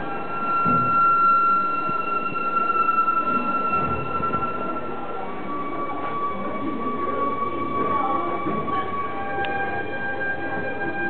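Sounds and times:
fainter higher tone: 0.0s - 8.3s
rumbling background noise: 0.0s - 11.0s.

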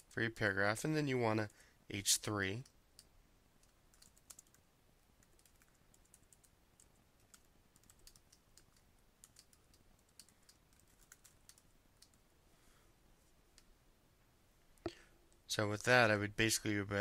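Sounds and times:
faint typing on computer keyboard: 1.3s - 1.8s, 2.4s - 12.3s.

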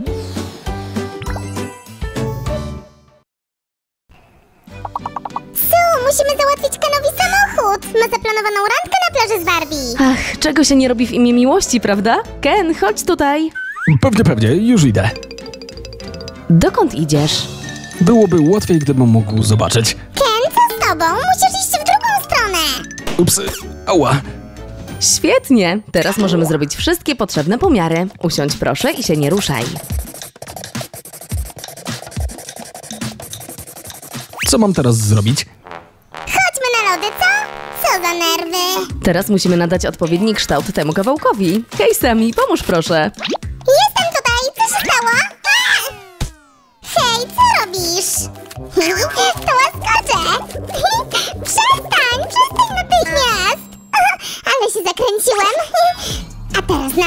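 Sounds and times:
background music: 0.0s - 3.2s, 4.4s - 57.0s
comic warbling sound effect: 13.5s - 14.4s, 45.9s - 47.0s
pencil scratching on cardboard: 29.2s - 34.4s.

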